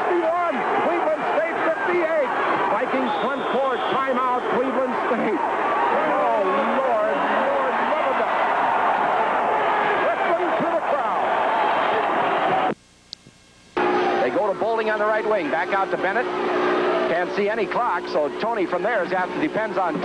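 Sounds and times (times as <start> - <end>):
crowd shouting: 0.0 - 12.7, 13.8 - 20.0.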